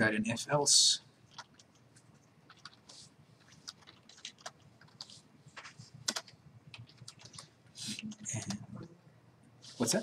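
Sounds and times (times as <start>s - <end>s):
keystrokes on computer keyboard: 1.3s - 8.6s.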